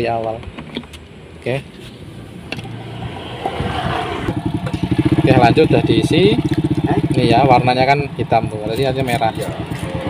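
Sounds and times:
motorcycle engine idling: 4.3 - 10.0.

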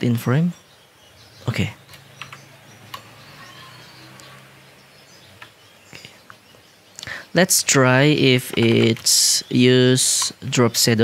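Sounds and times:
computer keyboard and mouse clicks: 1.9 - 3.2, 5.3 - 5.6, 8.5 - 9.2, 10.1 - 10.4.

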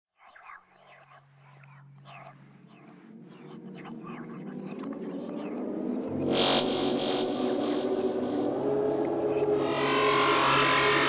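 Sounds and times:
person whispering: 0.2 - 9.7
low steady drone: 1.3 - 11.0.

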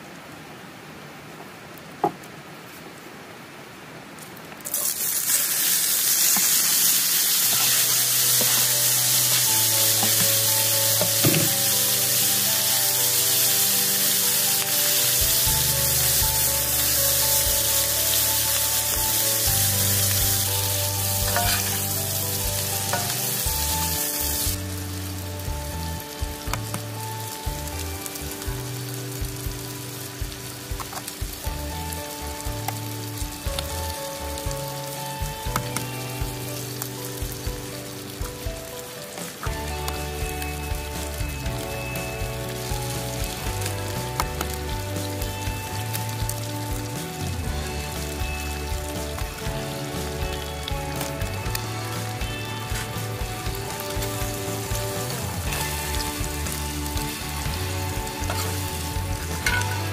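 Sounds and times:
food sizzling in a skillet: 4.6 - 59.9
spatula stirring: 6.4 - 11.7, 14.1 - 23.4, 58.2 - 58.7
soft background music: 6.5 - 59.9.

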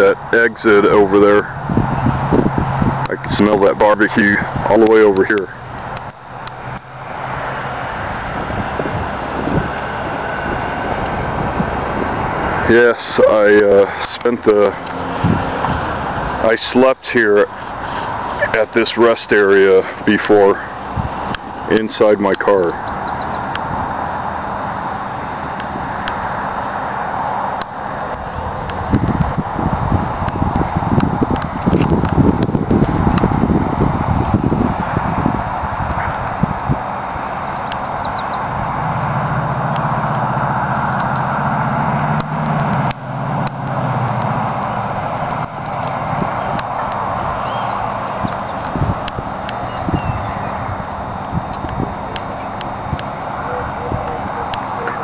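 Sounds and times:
highway traffic hiss: 0.0 - 55.0
wind: 0.0 - 55.0
car engine idling: 35.4 - 55.0.

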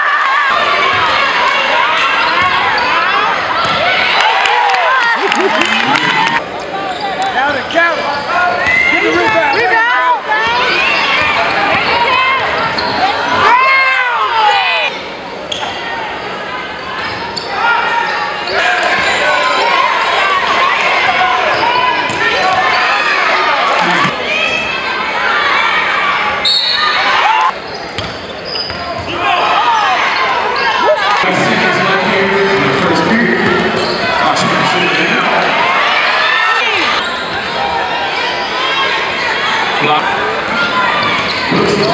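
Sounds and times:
players and crowd shouting: 0.0 - 41.9
voices in a hall: 0.0 - 41.9
sneakers squeaking: 0.8 - 4.1, 6.6 - 9.8, 10.4 - 13.6, 14.9 - 19.4, 21.0 - 23.2, 26.4 - 31.2, 32.7 - 34.4, 36.0 - 39.5, 40.4 - 41.9
sneakers squeaking on hardwood: 10.4 - 13.2, 27.6 - 29.2, 33.4 - 34.2, 40.9 - 41.9.

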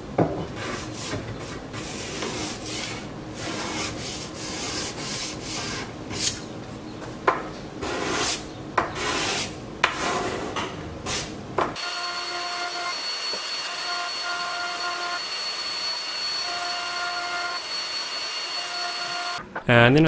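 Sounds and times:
jointer hiss and whine: 11.8 - 20.0.

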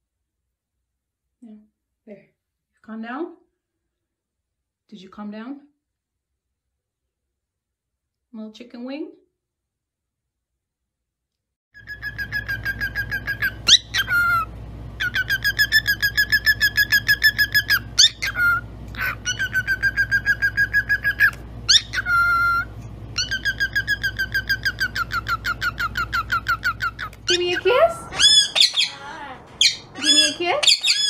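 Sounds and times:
cockatiel chirping: 11.8 - 31.0
low steady hum: 11.8 - 31.0
cockatiel sharp upward whistles: 28.1 - 29.0.

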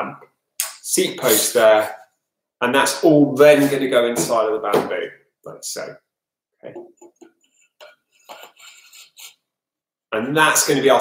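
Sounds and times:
rubs and clicks of handling: 7.0 - 9.4.

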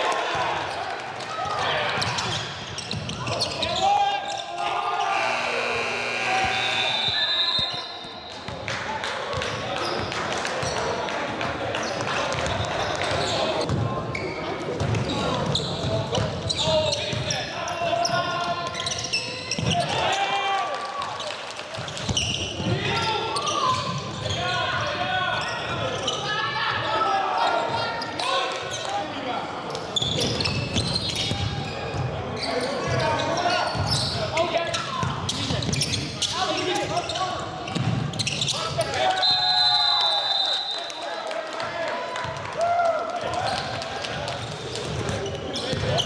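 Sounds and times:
people shouting and talking: 0.0 - 46.0
whistle blast: 5.1 - 8.3, 39.2 - 41.0.

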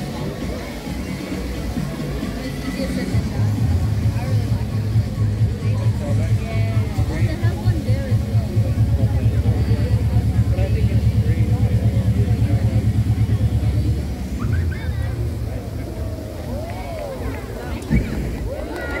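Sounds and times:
crowd talking: 0.0 - 19.0
loud low pulsing rumble: 3.1 - 18.6.

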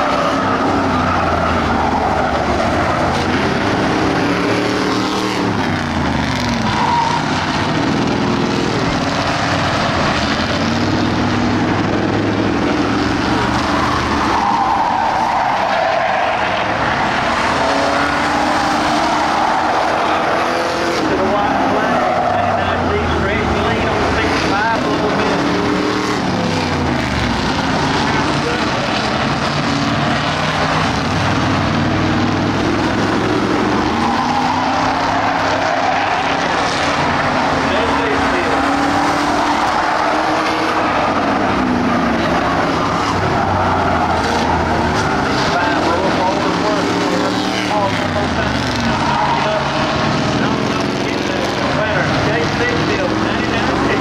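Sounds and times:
race car engines revving: 0.0 - 54.0.

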